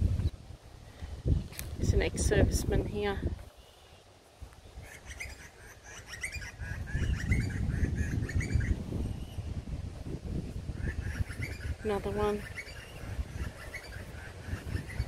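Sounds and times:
wind rumble on microphone: 0:00.0 - 0:03.6, 0:06.0 - 0:15.0
birds chirping: 0:02.8 - 0:09.7, 0:10.6 - 0:15.0.

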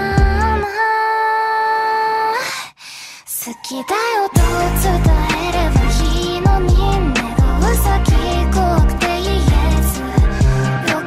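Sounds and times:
musical accompaniment: 0:04.3 - 0:11.0.

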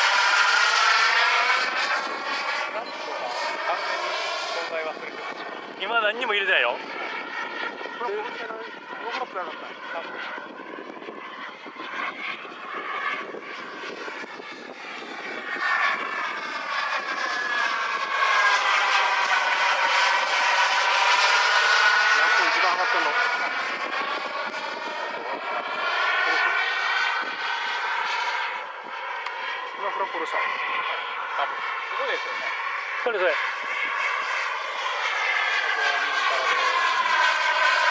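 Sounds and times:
model jet engine whine: 0:00.0 - 0:37.9.

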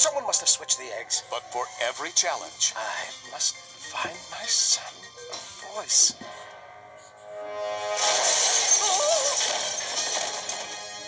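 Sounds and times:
trailer music: 0:05.9 - 0:11.0.

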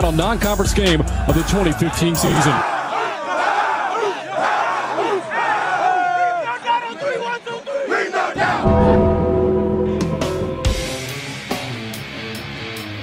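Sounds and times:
players shouting and hollering: 0:00.2 - 0:08.7
music: 0:08.5 - 0:13.0.

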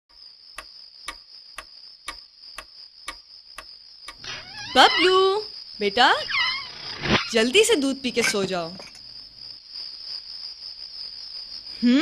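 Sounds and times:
clock ticking: 0:00.6 - 0:04.2.

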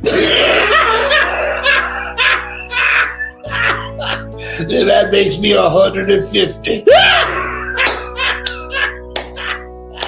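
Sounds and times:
background music: 0:00.0 - 0:10.0
audience laughing: 0:00.4 - 0:04.3.

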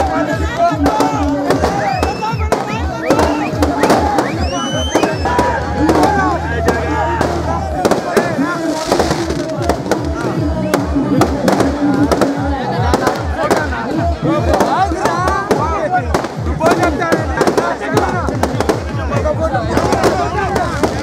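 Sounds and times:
crowd shouting: 0:00.0 - 0:21.0
firecrackers cracking: 0:00.0 - 0:21.0
music with low beat: 0:00.0 - 0:21.0.

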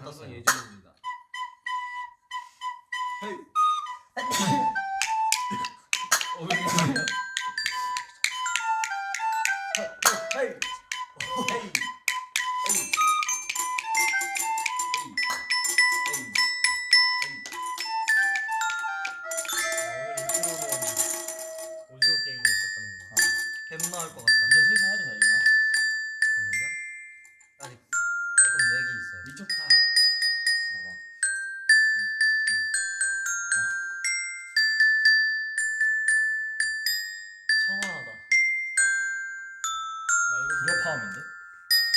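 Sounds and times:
recorder melody: 0:01.0 - 0:22.0
high ringing mallet notes: 0:03.0 - 0:41.9
mallet-struck percussion: 0:04.2 - 0:41.9.

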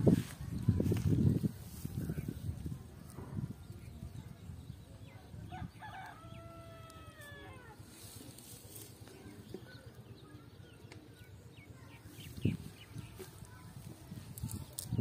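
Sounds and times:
low rustle of net handled: 0:07.1 - 0:09.4.

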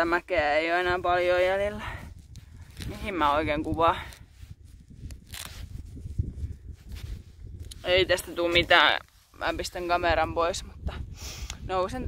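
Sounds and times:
wind rumbling on microphone: 0:00.0 - 0:12.0
camera handling rustles and clicks: 0:05.0 - 0:05.9.

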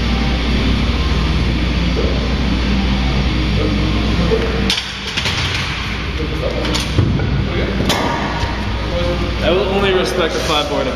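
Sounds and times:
background music: 0:00.0 - 0:10.9.

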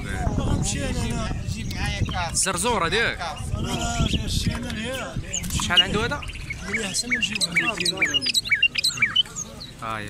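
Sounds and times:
songbirds chirping: 0:00.0 - 0:10.0.

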